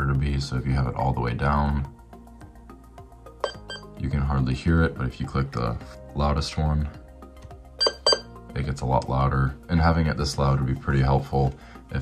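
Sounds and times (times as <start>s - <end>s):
faint music through small speaker: 0.0s - 12.0s.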